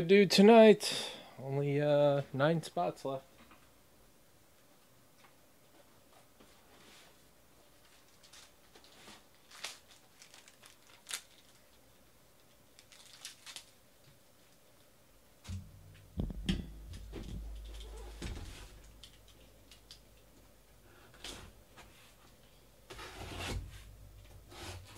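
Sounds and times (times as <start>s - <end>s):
cardboard and tape crinkling: 7.7s - 14.6s.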